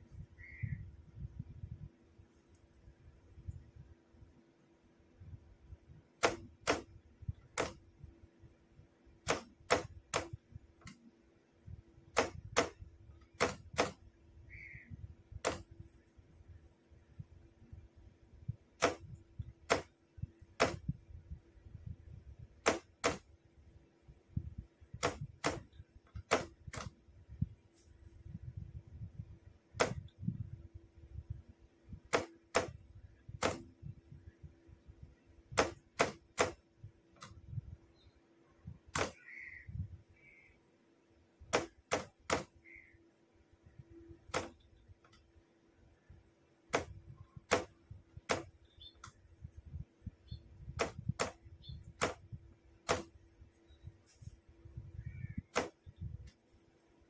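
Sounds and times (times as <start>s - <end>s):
faint steady hum: 0.0s - 57.0s.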